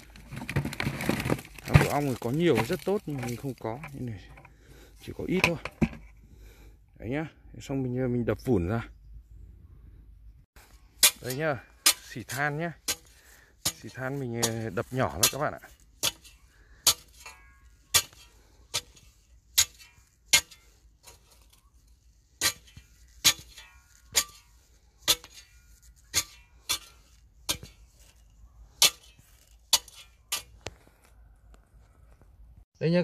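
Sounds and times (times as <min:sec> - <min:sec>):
metal spade crunching cinders: 0:00.0 - 0:04.4, 0:10.8 - 0:21.7, 0:22.3 - 0:30.7.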